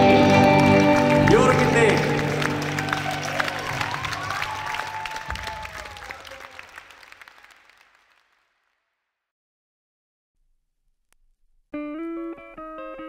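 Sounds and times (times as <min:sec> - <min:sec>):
rock band ringing notes: 0:00.0 - 0:03.4
audience applauding: 0:00.0 - 0:08.8.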